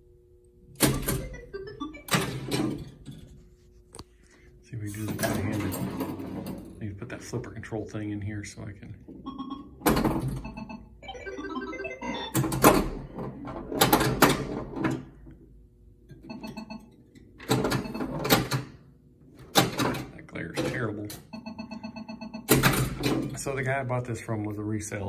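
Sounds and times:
pulsing electronic game tones: 1.2 - 2.2, 10.4 - 12.4.

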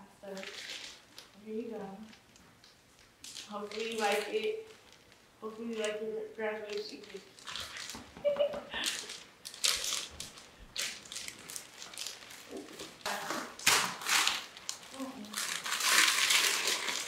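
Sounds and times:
wrapping paper crinkling and tearing: 0.2 - 17.0.

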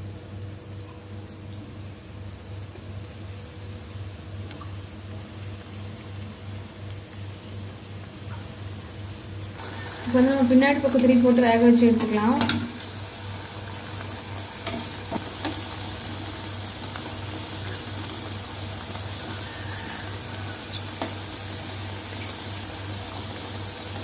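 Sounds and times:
dough sizzling in oil: 0.0 - 24.0
metal spoon clicking on pan: 12.0 - 12.7.

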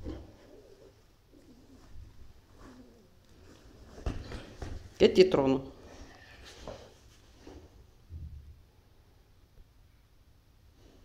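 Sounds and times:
animal cooing softly: 0.0 - 3.2.

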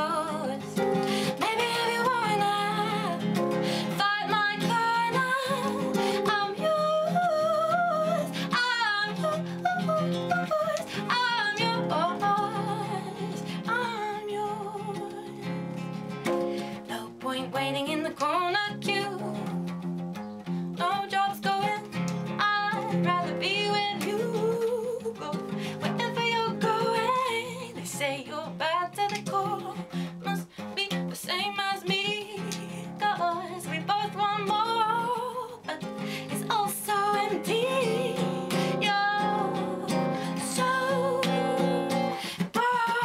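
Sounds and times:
woman singing with vibrato: 0.0 - 15.6, 16.9 - 19.7, 20.8 - 43.0
strummed acoustic guitar: 0.0 - 43.0.

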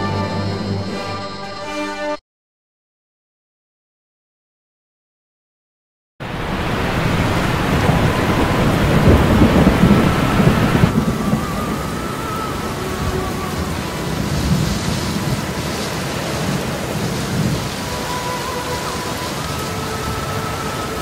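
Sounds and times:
heavy rain: 6.2 - 21.0
rolling thunder: 6.2 - 21.0.

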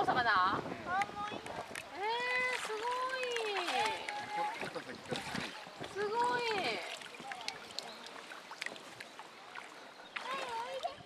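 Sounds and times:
background wash of water: 0.0 - 11.0
shallow water splashing: 0.9 - 11.0
distant children's voices: 9.2 - 11.0.

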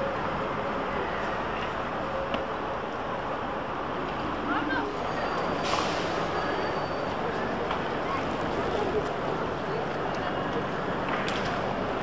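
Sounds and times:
pedestrians' voices: 0.0 - 12.0
traffic noise: 0.0 - 12.0.

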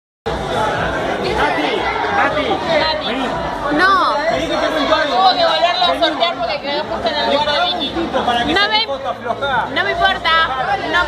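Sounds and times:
crowd chatter: 0.3 - 11.0.

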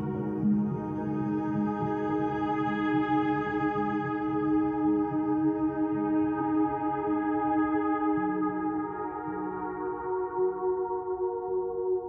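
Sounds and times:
ambient background music: 0.0 - 12.0.

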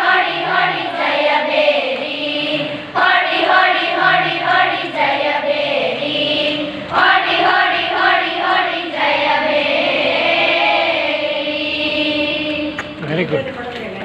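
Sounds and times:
girls singing together: 0.0 - 13.0.

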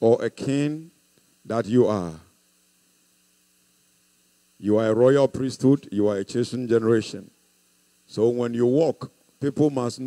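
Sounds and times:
man speaking: 0.0 - 0.9, 1.5 - 2.3, 4.6 - 7.3, 8.1 - 10.0
faint electrical hum: 0.0 - 10.0.

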